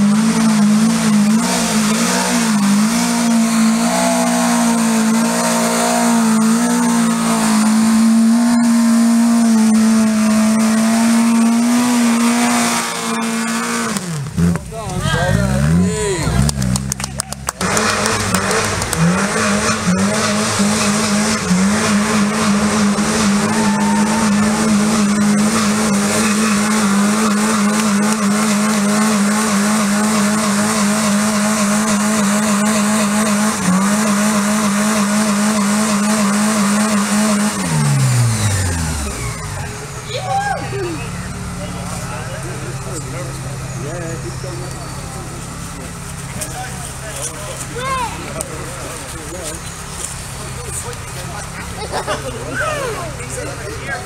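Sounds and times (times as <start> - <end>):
car engine revving high: 0.0 - 54.0.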